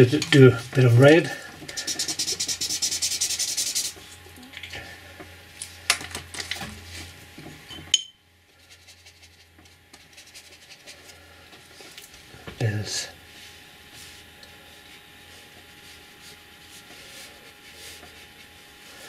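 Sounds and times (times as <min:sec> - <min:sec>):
marker scribbling on paper: 0:01.7 - 0:04.0, 0:10.0 - 0:11.1.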